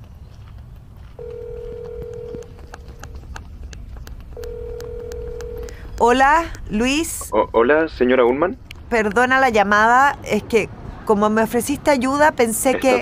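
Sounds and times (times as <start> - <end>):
low background noise: 0.0 - 13.0
telephone ringback tone beeps: 1.2 - 2.5, 4.4 - 5.7.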